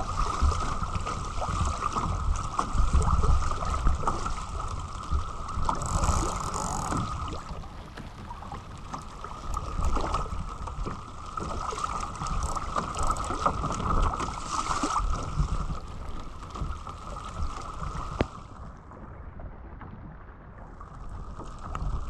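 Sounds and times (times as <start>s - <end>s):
wind buffeting microphone: 0.0s - 8.7s
water splashing along hull: 0.0s - 22.0s.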